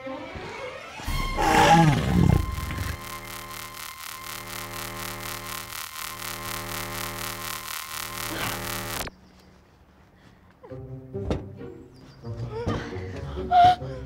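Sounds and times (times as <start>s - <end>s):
roar sound effect falling in pitch: 1.0s - 2.5s.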